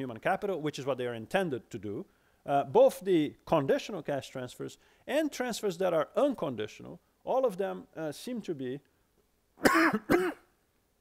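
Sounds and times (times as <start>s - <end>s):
man coughing: 9.6s - 10.5s.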